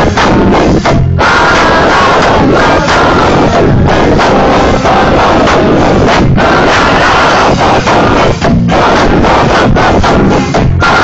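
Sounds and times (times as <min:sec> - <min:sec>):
live band playing loud: 0:00.0 - 0:11.0
shouted group vocals: 0:00.0 - 0:11.0.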